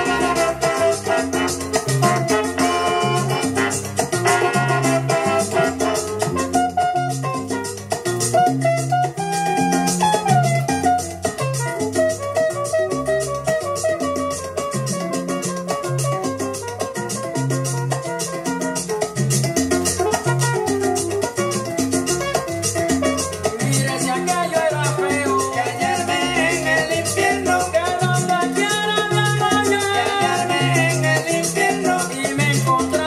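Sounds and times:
salsa music from vinyl: 0.0s - 33.0s.

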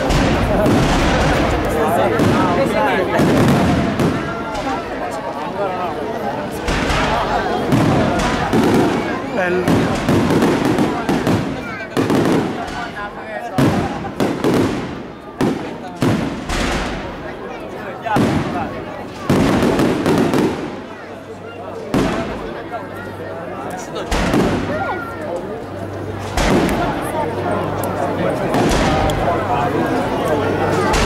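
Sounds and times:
fireworks bursting: 0.0s - 5.4s, 6.5s - 17.4s, 18.0s - 21.2s, 21.8s - 22.6s, 24.0s - 25.0s, 26.1s - 27.1s, 28.5s - 29.4s, 30.8s - 31.0s
crowd murmuring: 0.0s - 31.0s.

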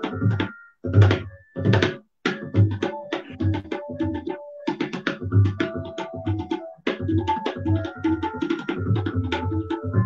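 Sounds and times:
tabla strokes: 0.0s - 10.0s.

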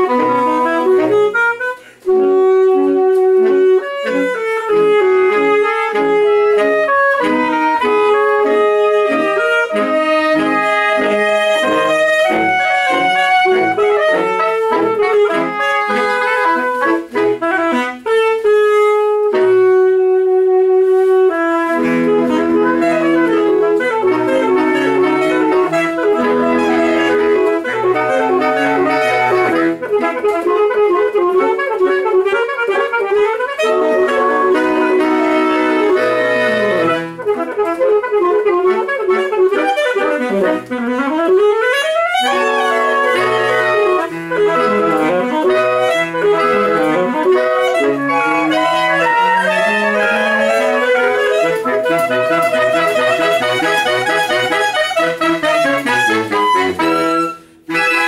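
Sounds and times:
saxophone quintet playing: 0.0s - 58.0s.

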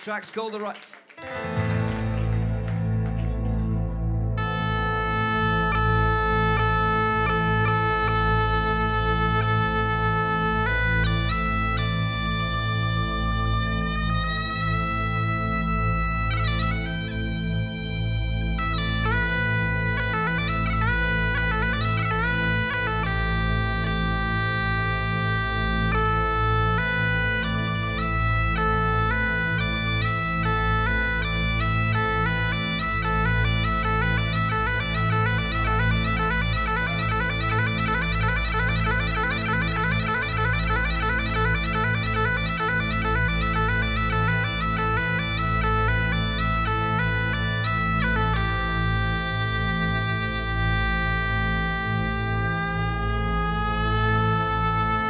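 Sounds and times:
bagpipe playing a tune: 1.2s - 55.0s.

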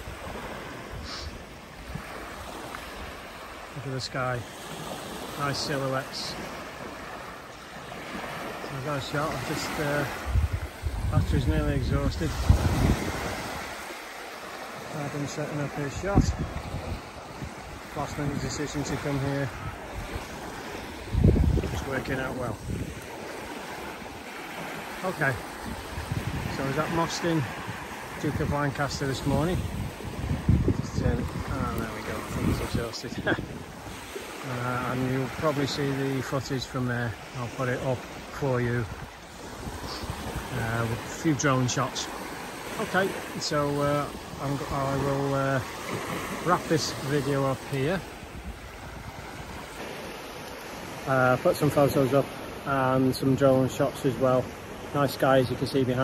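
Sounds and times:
small waves washing onto beach: 0.0s - 56.0s.

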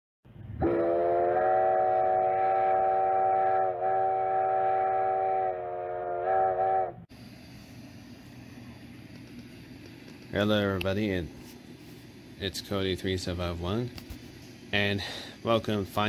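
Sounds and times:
train chime whistle blast: 0.6s - 7.0s.

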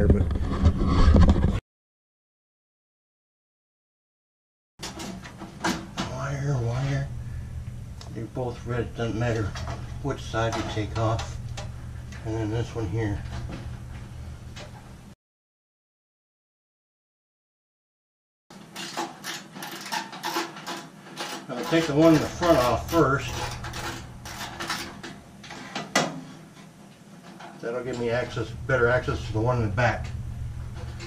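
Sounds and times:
hands clicking and knocking wiring: 18.6s - 28.1s.

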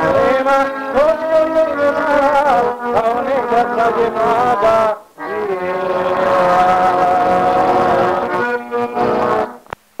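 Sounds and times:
accordion playing chords: 0.0s - 9.6s.

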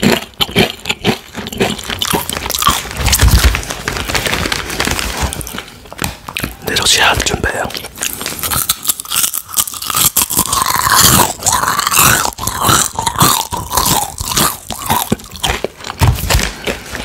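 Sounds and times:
crunching and chewing chips: 0.0s - 17.0s.

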